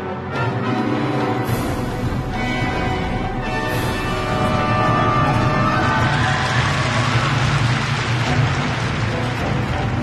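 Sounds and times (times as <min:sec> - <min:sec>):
audience applauding: 0:04.7 - 0:10.0.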